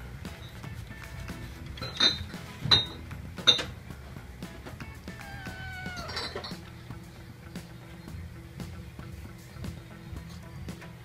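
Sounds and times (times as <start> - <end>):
background music: 0.0 - 11.0
cat meowing: 5.1 - 6.5.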